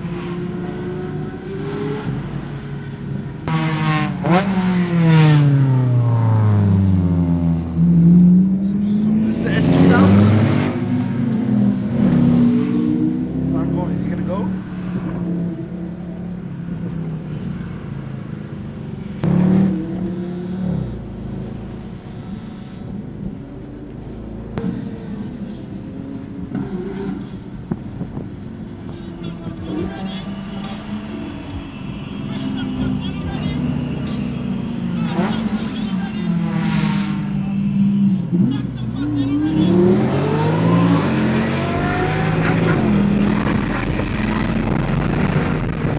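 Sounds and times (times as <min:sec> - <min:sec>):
sports car engines revving: 0:00.0 - 0:45.9.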